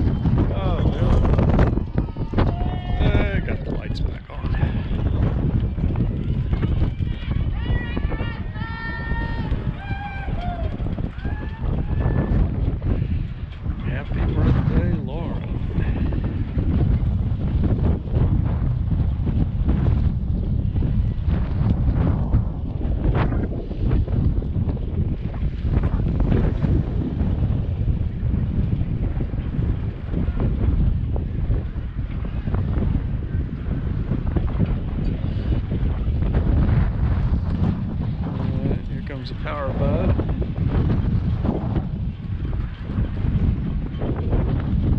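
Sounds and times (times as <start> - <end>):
wind buffeting microphone: 0.0 - 44.9.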